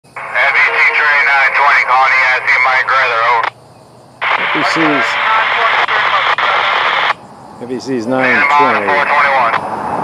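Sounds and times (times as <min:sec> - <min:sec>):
voice over two-way radio: 0:00.2 - 0:03.5, 0:04.2 - 0:09.6.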